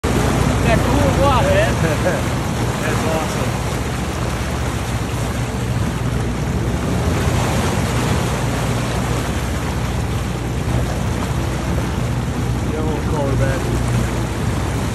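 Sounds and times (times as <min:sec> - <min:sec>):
boat engine hum: 0:00.0 - 0:14.9
water splashing along boat hull: 0:00.0 - 0:14.9.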